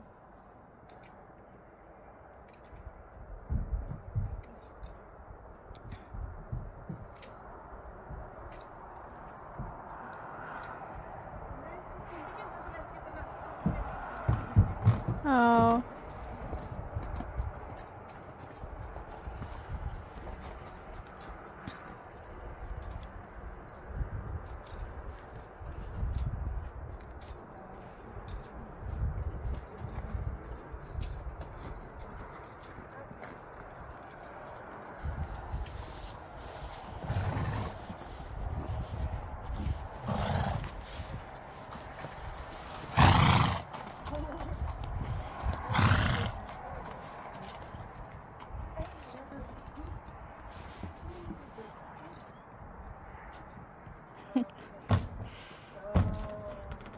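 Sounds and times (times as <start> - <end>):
hoofsteps on snow: 12.0 - 52.2.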